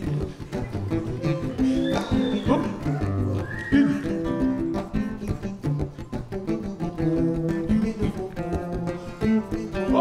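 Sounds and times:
acoustic guitars playing: 0.0s - 10.0s.

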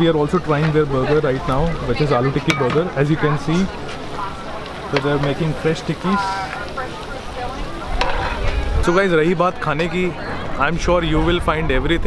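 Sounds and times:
patties sizzling in oil: 0.0s - 9.2s.

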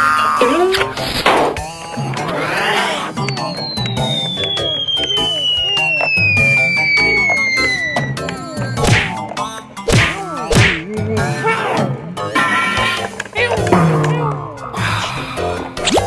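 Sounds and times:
sharp whacks: 1.0s - 1.7s, 8.8s - 9.2s, 9.9s - 10.9s
descending cartoon whistle: 2.3s - 8.9s.

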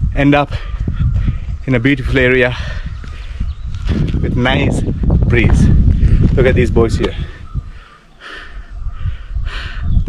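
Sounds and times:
bird cawing: 7.2s - 9.4s.

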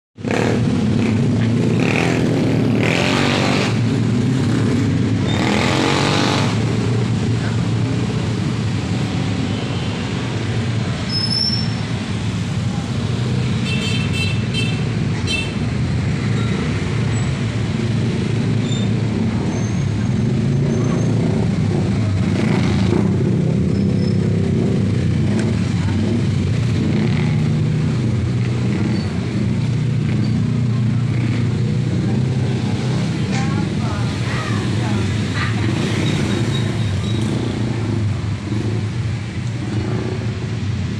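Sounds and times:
hum of slow traffic engines: 0.2s - 40.9s
vehicles passing loudly: 0.2s - 40.9s.

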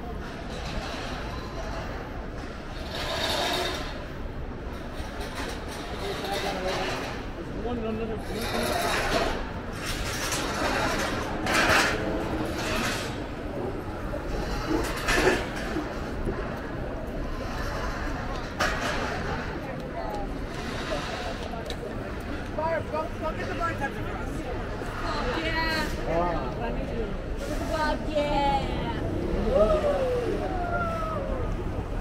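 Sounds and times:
indistinct voices of passersby: 0.0s - 32.0s
traffic: 0.0s - 32.0s.

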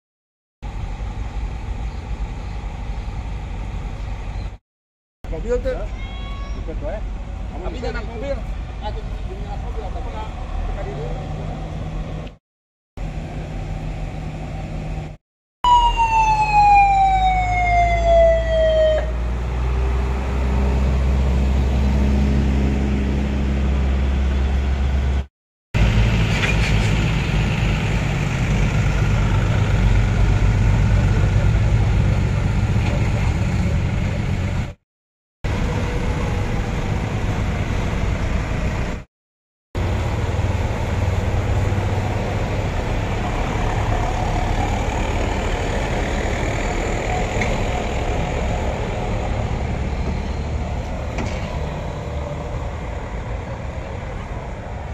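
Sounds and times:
trucks and bus engines rumbling: 0.6s - 4.6s, 5.3s - 12.4s, 13.0s - 34.8s, 35.5s - 39.1s, 39.8s - 54.9s
siren wailing: 15.6s - 19.9s.

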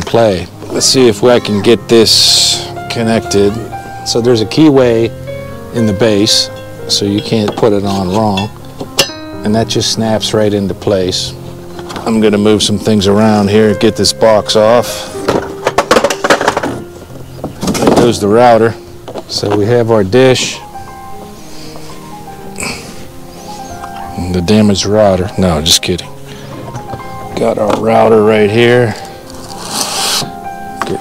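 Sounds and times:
soft background music: 0.0s - 31.0s.

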